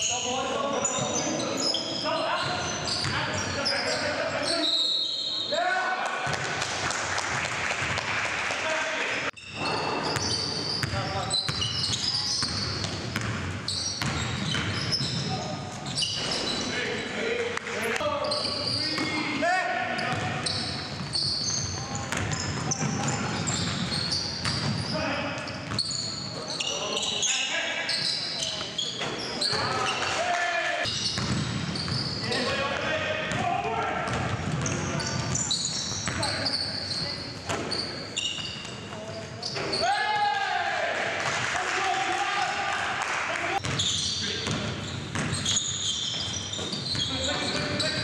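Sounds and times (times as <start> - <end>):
sneakers squeaking: 0.0 - 5.6, 9.3 - 40.3, 43.6 - 48.0
basketball bouncing on wooden floor: 12.4 - 13.4, 31.2 - 32.0, 43.6 - 47.8.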